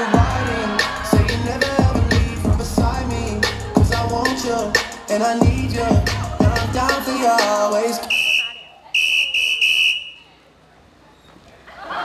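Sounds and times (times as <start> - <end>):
dance music: 0.0 - 8.5
whistle blasts: 8.0 - 10.4.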